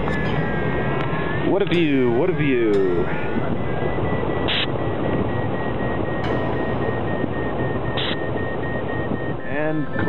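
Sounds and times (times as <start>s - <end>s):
variometer beeping: 0.0s - 10.0s.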